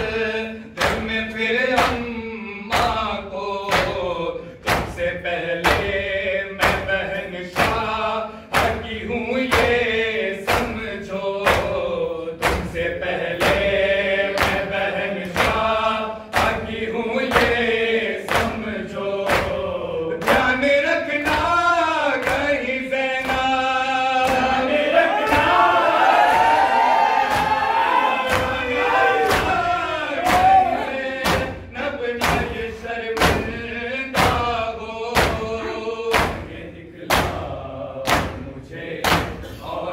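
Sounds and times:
men chanting in unison: 0.0s - 39.9s
voices singing lament: 0.0s - 39.9s
crowd beating chests: 23.2s - 39.6s.

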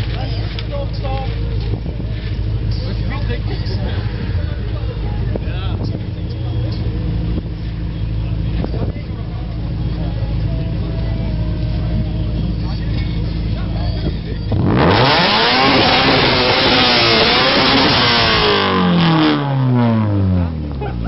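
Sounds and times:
car engine idling and revving: 0.0s - 21.0s.

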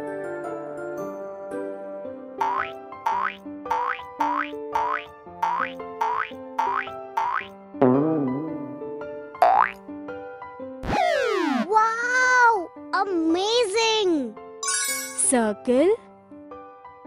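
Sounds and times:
light children's music: 0.0s - 17.0s
cartoon boing glide: 2.4s - 8.8s, 9.4s - 9.8s, 10.8s - 11.7s.

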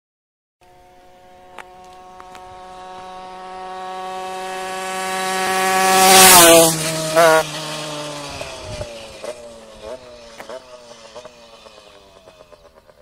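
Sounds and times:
two-stroke scooter engine at high revs: 0.6s - 13.0s.

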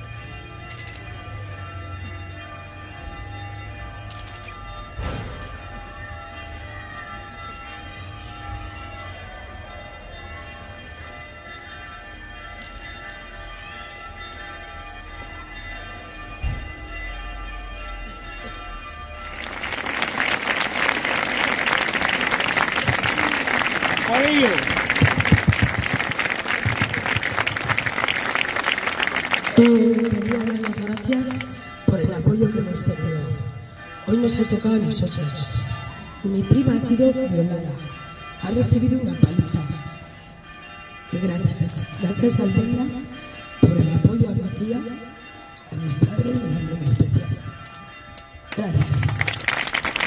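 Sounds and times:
bells ringing: 0.0s - 50.0s
crowd applause: 19.3s - 31.6s, 48.8s - 50.0s.

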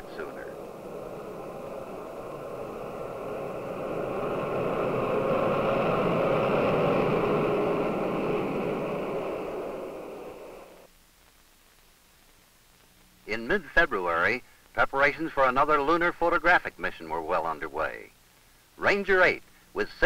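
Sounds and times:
jet aircraft engines roaring: 0.0s - 10.9s.

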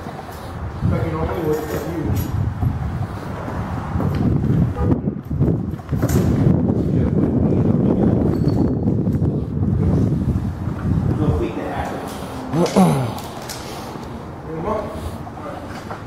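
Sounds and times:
wind buffeting microphone: 0.0s - 12.5s.

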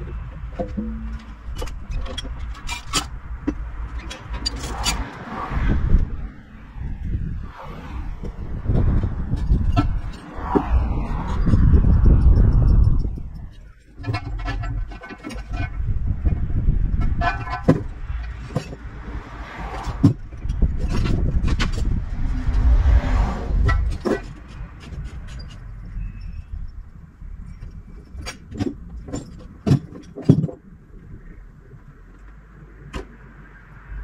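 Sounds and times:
heavy machinery rumble: 0.0s - 30.2s
sharp knocks and clanks: 0.1s - 5.2s.

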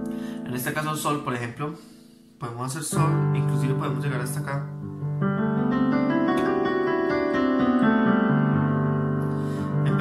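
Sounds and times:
electronic keyboard piano arpeggios: 2.9s - 10.0s.

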